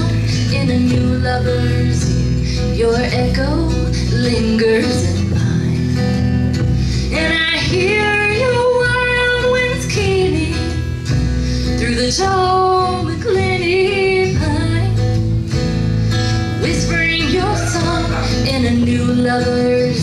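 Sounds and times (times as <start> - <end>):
acoustic guitar: 0.0 - 20.0
upright bass: 0.0 - 20.0
woman singing folk song: 0.0 - 20.0.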